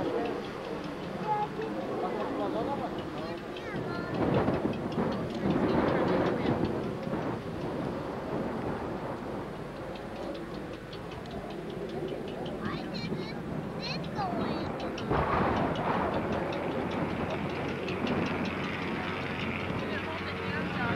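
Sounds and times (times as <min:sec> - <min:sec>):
people talking: 0:00.0 - 0:07.2, 0:12.0 - 0:20.9
steady rumbling noise: 0:00.0 - 0:20.9.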